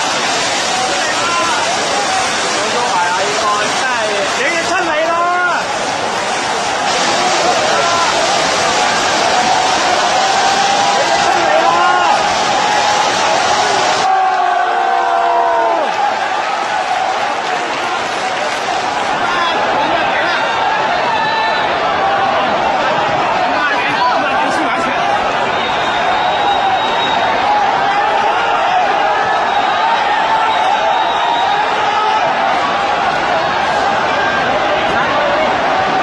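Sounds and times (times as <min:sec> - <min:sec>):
crowd shouting: 0:00.0 - 0:36.0.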